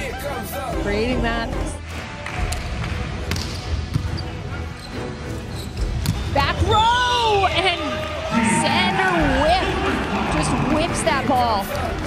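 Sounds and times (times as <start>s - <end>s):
indoor arena noise: 0.0s - 12.0s.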